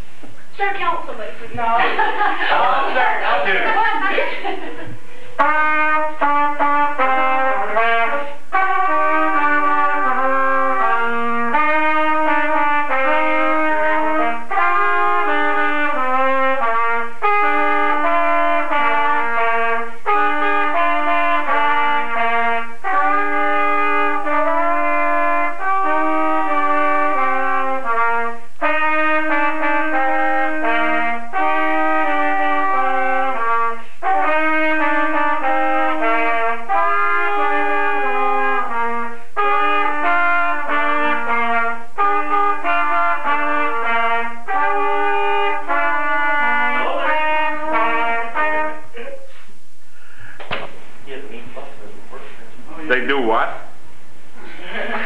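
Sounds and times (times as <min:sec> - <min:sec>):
two trumpets playing a duet: 0:01.6 - 0:04.2, 0:04.8 - 0:49.1.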